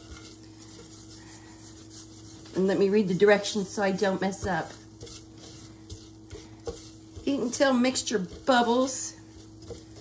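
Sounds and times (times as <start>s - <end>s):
spatula scraping and sizzling roux: 0.0s - 10.0s
spatula tapping pan: 0.0s - 10.0s.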